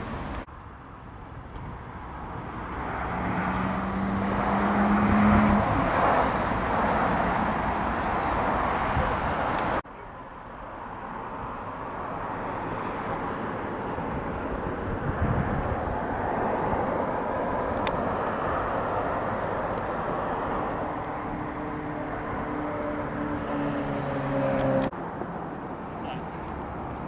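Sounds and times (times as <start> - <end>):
engine rushing drone: 2.1 - 9.8, 12.0 - 24.9.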